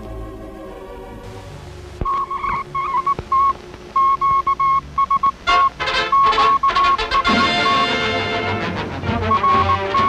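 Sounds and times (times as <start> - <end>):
morse code beeping: 2.0 - 8.2, 9.3 - 10.0.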